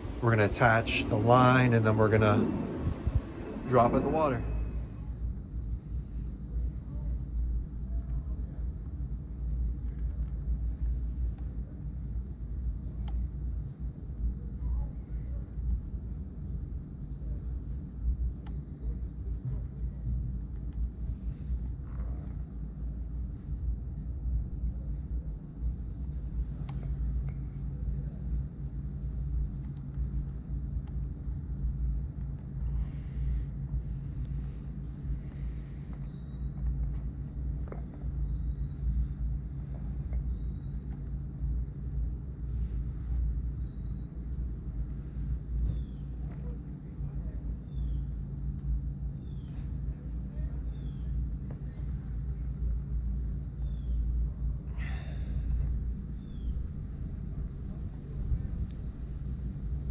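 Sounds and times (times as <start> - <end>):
low outdoor rumble: 0.0 - 59.9
faint small clicks: 13.0 - 13.2, 26.6 - 27.4, 29.6 - 31.0.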